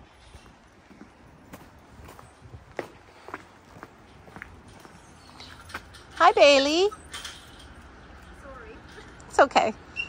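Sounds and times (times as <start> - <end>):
footsteps on concrete: 0.1 - 5.9
footsteps on wooden deck: 0.2 - 5.8.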